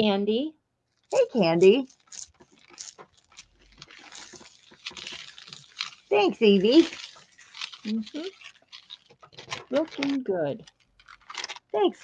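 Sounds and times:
paper rustling and crinkling: 0.9 - 12.0
small ticks: 1.0 - 6.2, 6.8 - 11.7.

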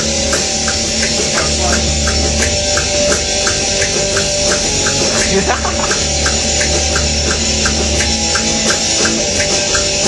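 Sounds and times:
electric guitar playing heavy rock: 0.0 - 10.0
ticking beat: 0.0 - 10.0.

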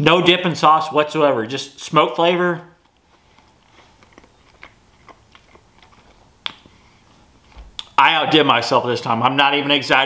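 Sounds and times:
wet mouth clicks of chewing: 2.8 - 8.0.

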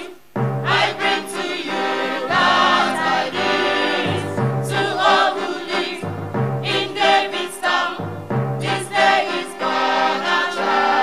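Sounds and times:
electronic keyboard accompaniment: 0.0 - 11.0
mixed choir singing a carol: 0.0 - 11.0.

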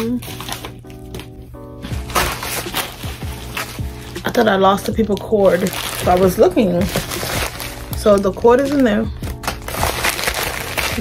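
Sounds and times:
plastic mailer crinkling: 0.0 - 11.0
soft background music: 0.0 - 11.0.

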